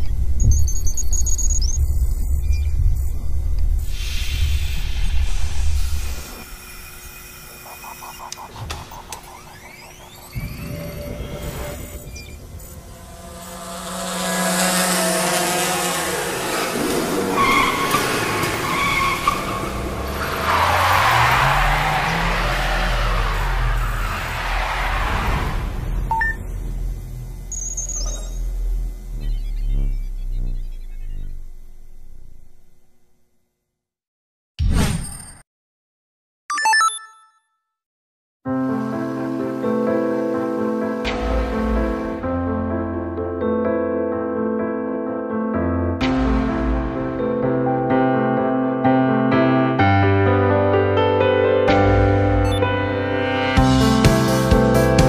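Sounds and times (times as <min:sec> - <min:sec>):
heavy-bass music: 0:46.0 - 0:48.2, 0:51.7 - 0:55.0.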